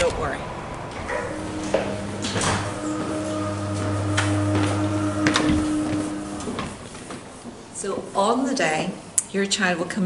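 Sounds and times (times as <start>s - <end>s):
door motor humming: 0.9s - 6.8s.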